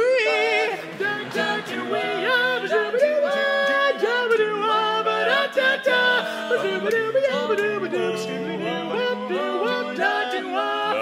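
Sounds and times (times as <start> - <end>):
male quartet singing a cappella: 0.0 - 11.0.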